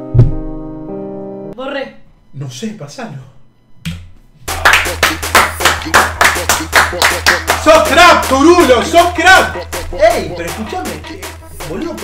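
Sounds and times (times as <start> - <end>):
music with low bass: 4.5 - 12.0
people clapping rhythmically: 4.5 - 12.0.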